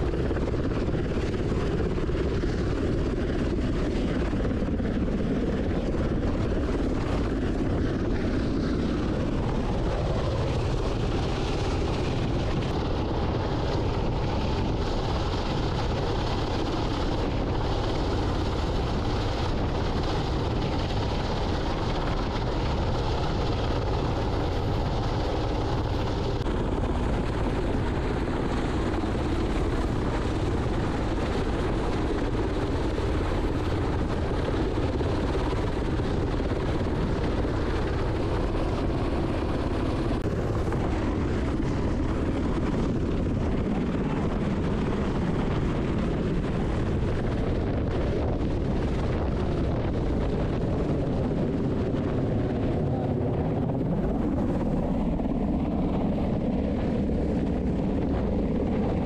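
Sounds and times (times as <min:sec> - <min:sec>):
helicopter hovering overhead: 0:00.0 - 0:59.0.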